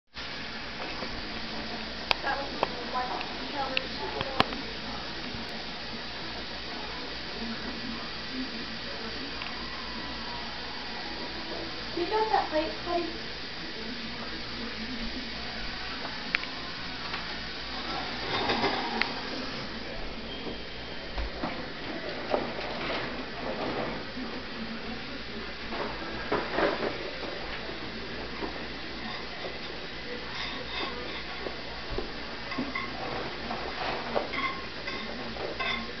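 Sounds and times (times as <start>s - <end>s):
steady hiss: 0.1s - 36.0s
dishes clinking: 17.8s - 19.5s, 28.4s - 31.6s, 32.5s - 36.0s.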